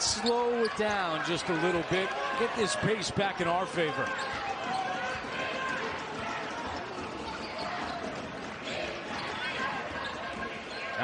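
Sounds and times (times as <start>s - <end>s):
arena crowd chatter: 0.0s - 11.0s.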